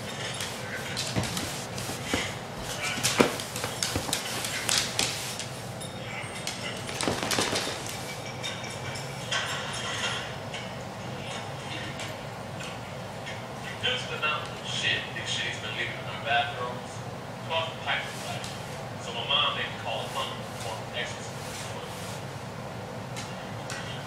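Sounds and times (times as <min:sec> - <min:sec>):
dog scrambling on furniture: 0:00.0 - 0:05.6, 0:06.4 - 0:08.4
television voices: 0:00.0 - 0:24.0.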